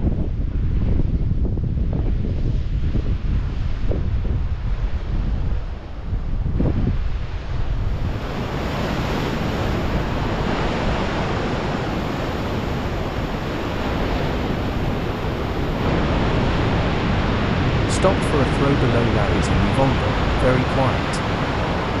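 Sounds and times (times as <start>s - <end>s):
wind buffeting microphone: 0.0s - 22.0s
surf breaking over rocks: 7.4s - 22.0s.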